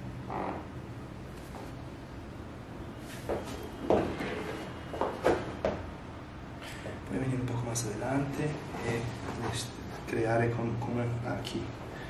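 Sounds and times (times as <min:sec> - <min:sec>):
low steady hum: 0:00.0 - 0:12.0
creaks on padded mat: 0:00.3 - 0:00.7.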